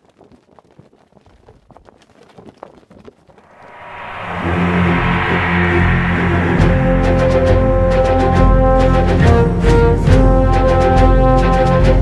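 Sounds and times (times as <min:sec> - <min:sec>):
soundtrack music with low chords: 0:03.7 - 0:08.4.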